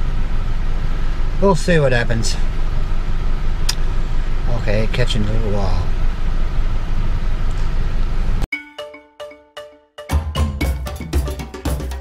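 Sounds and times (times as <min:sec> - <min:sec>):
bell-like jingle notes: 0:08.5 - 0:12.0.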